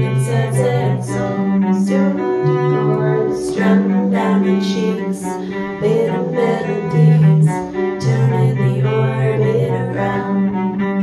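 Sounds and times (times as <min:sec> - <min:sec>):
bowed cello low notes: 0:00.0 - 0:11.0
electric guitar chords: 0:00.0 - 0:11.0
person singing: 0:00.0 - 0:11.0.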